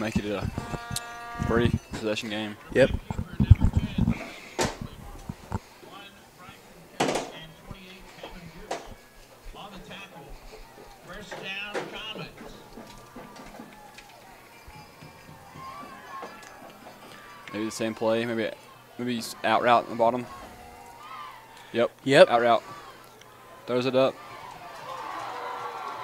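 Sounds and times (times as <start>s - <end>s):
distant crowd voices and shouts: 0.0s - 26.0s.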